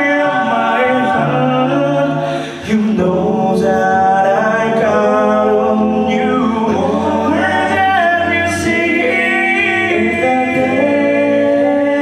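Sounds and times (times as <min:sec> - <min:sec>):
male group singing in harmony: 0:00.0 - 0:12.0.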